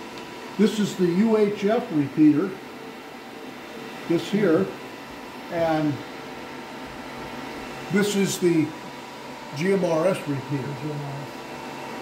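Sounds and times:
cooling fans hum and hiss: 0.0s - 12.0s.

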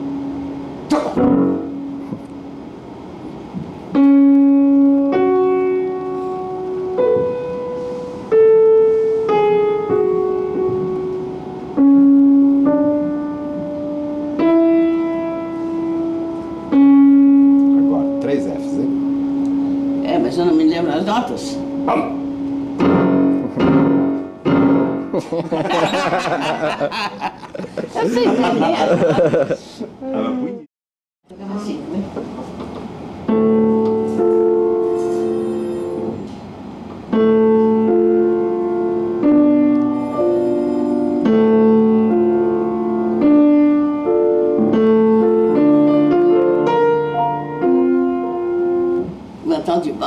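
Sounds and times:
grand piano notes ringing: 0.0s - 26.7s, 33.2s - 50.0s
people talking: 20.0s - 22.2s, 27.9s - 29.4s, 30.0s - 30.7s, 31.3s - 32.2s, 49.5s - 50.0s
people laughing: 25.1s - 30.6s.

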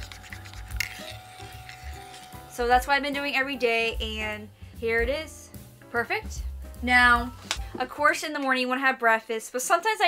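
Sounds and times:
spoon stirring in ceramic mug: 0.0s - 2.5s
quiet background music: 0.0s - 10.0s.

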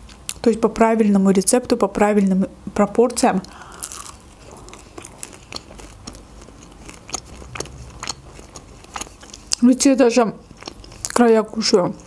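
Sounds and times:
chewing crisp crust: 3.4s - 12.0s.

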